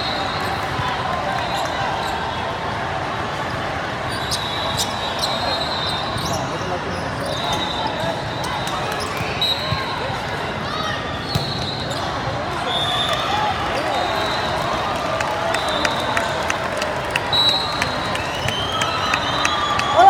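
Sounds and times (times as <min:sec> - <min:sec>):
chatter of many voices: 0:00.0 - 0:20.0
distant referee whistles: 0:11.2 - 0:14.8, 0:17.3 - 0:20.0.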